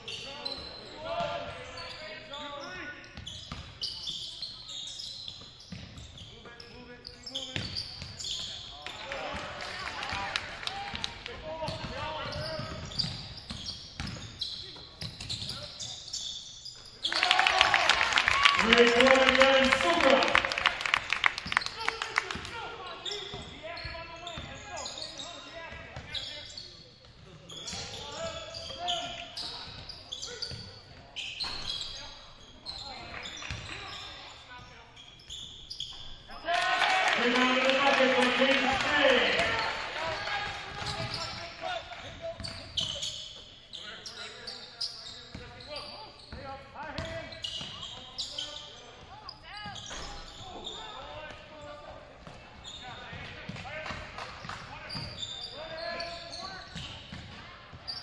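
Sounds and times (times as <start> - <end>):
voices echoing in gym: 0.0 - 58.0
loud voices shouting: 17.1 - 20.4, 36.4 - 41.7.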